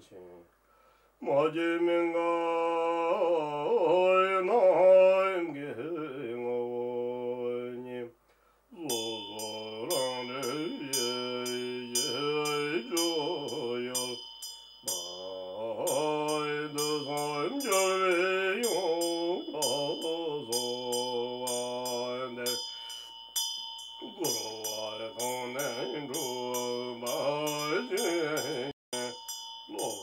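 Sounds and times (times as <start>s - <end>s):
man chanting in low voice: 0.0s - 0.5s, 1.2s - 14.2s, 14.8s - 22.7s, 24.0s - 30.0s
hand bell ringing: 8.8s - 30.0s.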